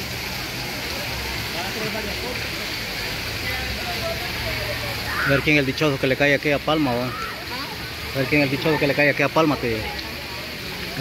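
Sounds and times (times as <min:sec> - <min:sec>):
fountain water splashing: 0:00.0 - 0:11.0
people talking: 0:00.2 - 0:11.0.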